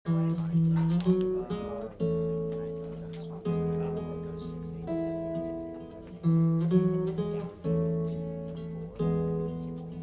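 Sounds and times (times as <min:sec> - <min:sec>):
guitar picking slow chords: 0:00.1 - 0:10.0.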